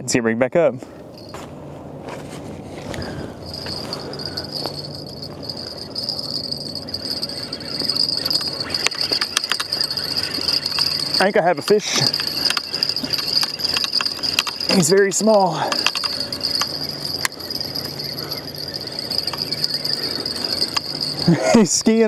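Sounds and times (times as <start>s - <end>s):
cricket-like insect trill: 1.2s - 1.4s, 3.0s - 22.0s
fishing rods and line handled: 2.8s - 21.6s.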